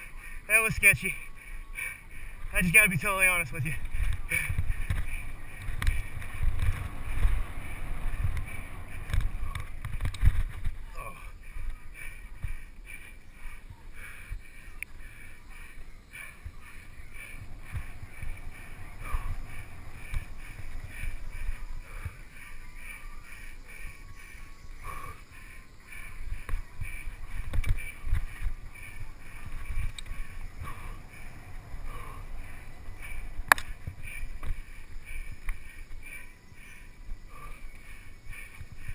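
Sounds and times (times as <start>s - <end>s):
wind and tyre rumble: 0.0s - 38.9s
bike rattling and clicking: 3.6s - 13.1s, 26.0s - 36.8s.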